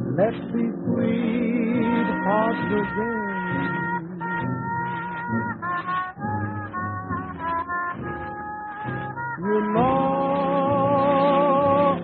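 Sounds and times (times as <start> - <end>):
swing big band music: 0.0 - 12.0
person singing: 0.1 - 6.2, 7.5 - 12.0.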